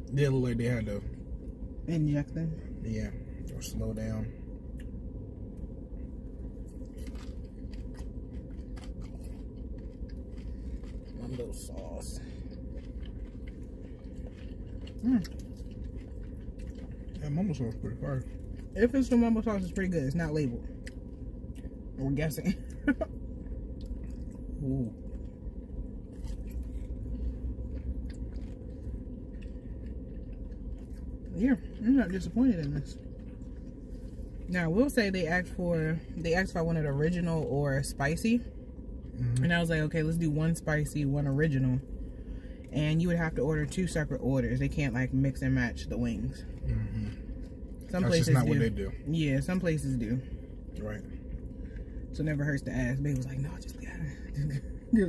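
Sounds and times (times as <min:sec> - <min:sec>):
low hum inside car cabin: 0:00.0 - 0:55.0
chewing with crunches: 0:02.7 - 0:34.5, 0:46.3 - 0:49.0, 0:50.2 - 0:52.2.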